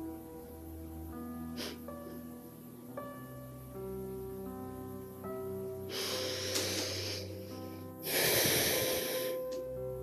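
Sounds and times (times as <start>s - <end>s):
soft background music: 0.0s - 10.0s
woman breathing loudly: 5.9s - 9.6s.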